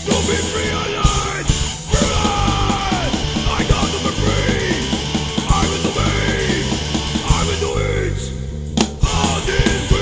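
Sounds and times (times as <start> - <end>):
punk band playing: 0.0 - 10.0
person yelling vocals: 0.6 - 4.9.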